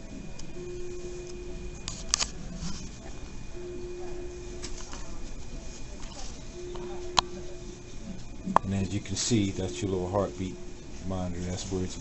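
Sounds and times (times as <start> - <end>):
faint high whine: 0.0 - 12.0
low electronic tone: 0.0 - 12.0.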